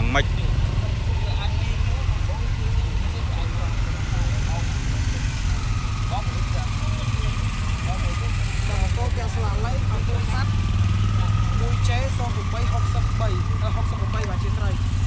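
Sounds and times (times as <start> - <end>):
crowd voices: 0.0 - 15.0
vehicle engines idling: 0.0 - 15.0.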